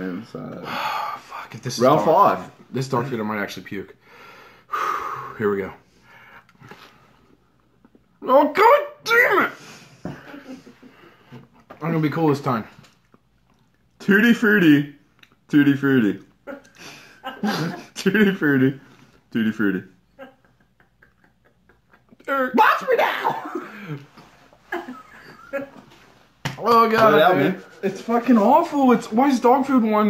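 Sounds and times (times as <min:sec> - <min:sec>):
man chewing: 0:12.9 - 0:13.9.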